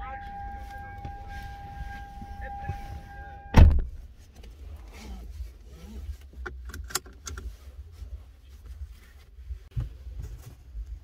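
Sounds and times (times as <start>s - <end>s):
low steady car rumble: 0.0s - 11.0s
seatbelt clicks and rattles: 4.4s - 7.5s.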